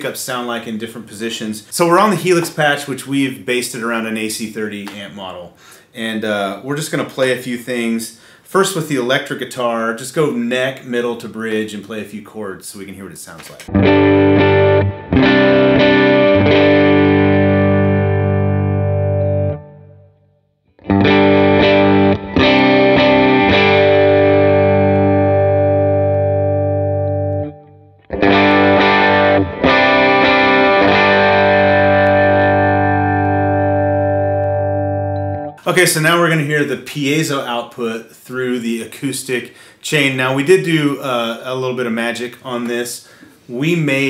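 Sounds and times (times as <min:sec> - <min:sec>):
electric guitar chords strummed: 0:13.7 - 0:20.1, 0:20.8 - 0:35.6.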